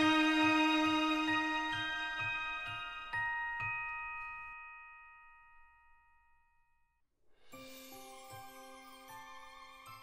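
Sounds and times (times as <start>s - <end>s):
chime-like music: 0.0s - 6.5s, 7.6s - 10.0s.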